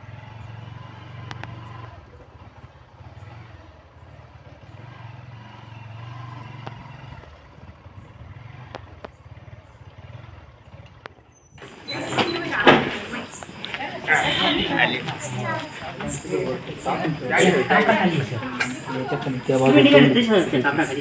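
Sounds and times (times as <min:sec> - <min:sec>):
small motorcycle engine running: 0:00.0 - 0:21.0
voices: 0:11.6 - 0:21.0.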